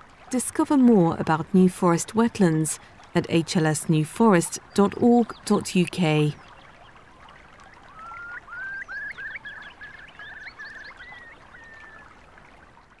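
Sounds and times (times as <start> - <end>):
faint stream hiss: 0.0 - 13.0.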